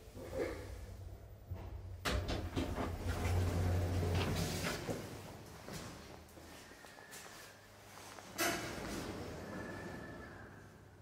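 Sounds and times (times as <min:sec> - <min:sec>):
elevator doors sliding open: 0:02.1 - 0:05.1, 0:08.3 - 0:10.8.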